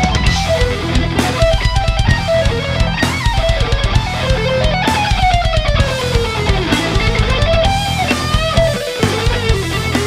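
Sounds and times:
bass guitar: 0.0s - 10.0s
drums: 0.0s - 10.0s
lead electric guitar: 0.0s - 10.0s.

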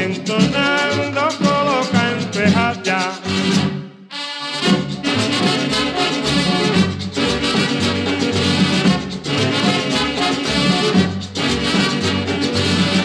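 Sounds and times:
merengue band playing: 0.0s - 13.0s.

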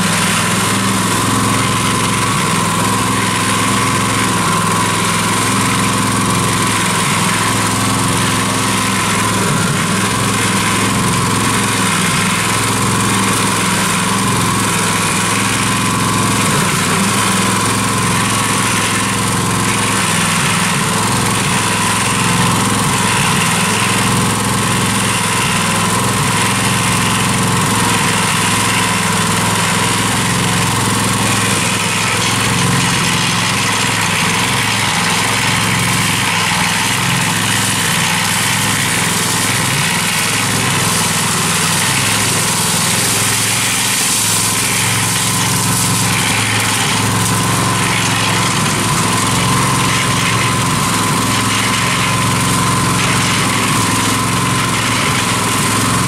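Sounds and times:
cement mixer engine running: 0.0s - 56.0s.

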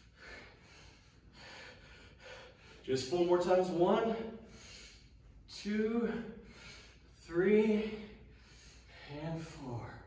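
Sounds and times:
man breathing hard: 0.0s - 2.9s, 4.2s - 5.4s, 6.4s - 9.7s.

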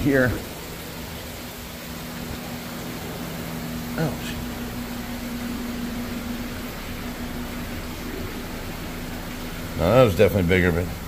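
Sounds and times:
aquarium pumps humming: 0.0s - 11.0s
water circulating: 0.0s - 11.0s.

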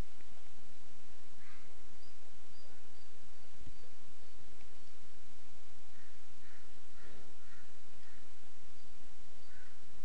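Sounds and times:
recording background hiss: 0.0s - 10.0s.

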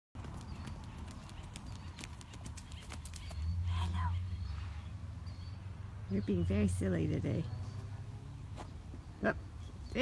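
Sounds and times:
hoofbeats on dirt and grass: 0.2s - 3.7s.

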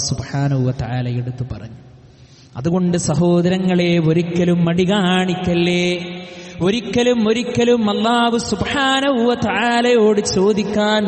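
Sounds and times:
man chanting melodically: 0.0s - 1.8s, 2.5s - 11.0s.

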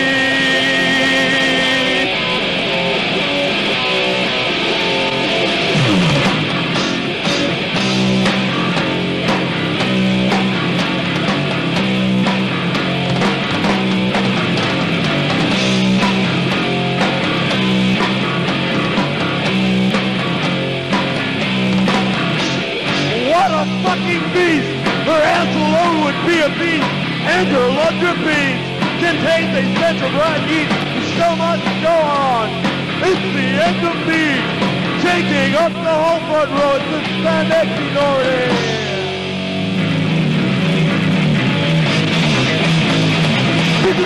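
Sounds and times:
distorted electric guitar riffing: 0.0s - 44.0s
metal band playing live: 0.0s - 44.0s.

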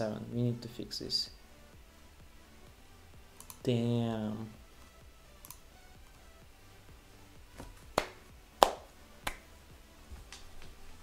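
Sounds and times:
sharp clicks: 3.4s - 3.7s, 5.4s - 5.6s.

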